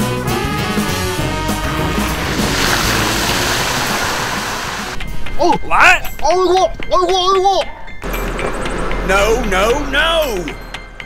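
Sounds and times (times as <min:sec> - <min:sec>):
background music: 0:00.0 - 0:11.0
heavy rain: 0:00.6 - 0:05.0.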